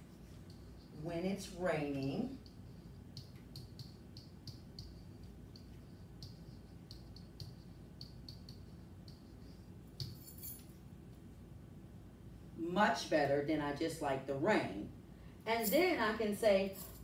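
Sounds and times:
pen tapping on whiteboard: 3.1 - 9.3.

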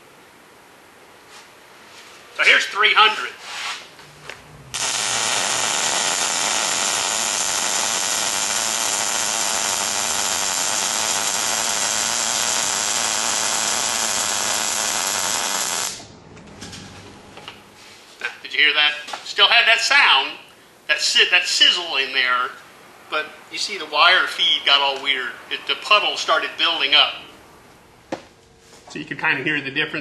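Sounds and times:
welding arc sizzling: 3.2 - 16.1.

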